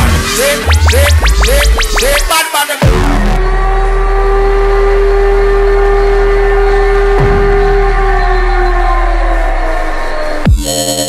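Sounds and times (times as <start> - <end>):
deep sub-bass drone: 0.0 - 2.3, 2.9 - 11.0
synth sweep: 0.0 - 10.5.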